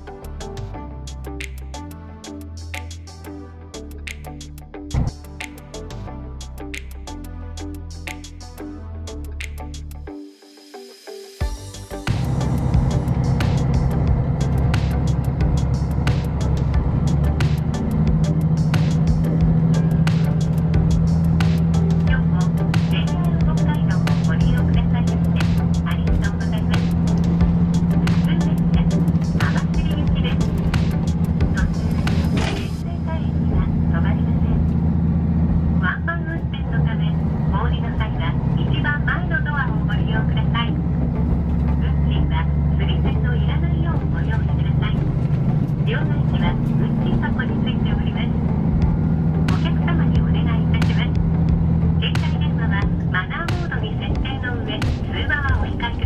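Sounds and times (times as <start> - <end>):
railcar engine drone: 11.4 - 56.0
indistinct voices talking: 21.9 - 34.7, 45.8 - 48.4, 49.4 - 51.2, 52.0 - 56.0.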